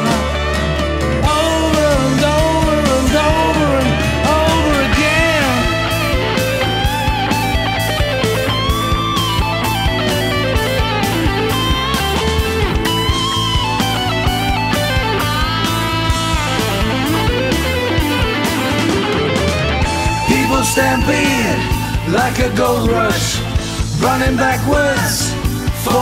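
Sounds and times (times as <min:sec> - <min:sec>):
lead electric guitar bent notes: 0:00.0 - 0:25.8
bass: 0:00.0 - 0:26.0
steady drum beat: 0:00.0 - 0:26.0.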